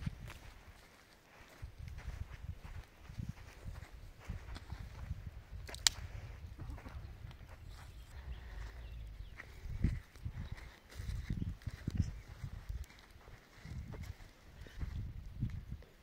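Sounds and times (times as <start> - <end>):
footsteps on dry dirt: 0.0 - 16.0.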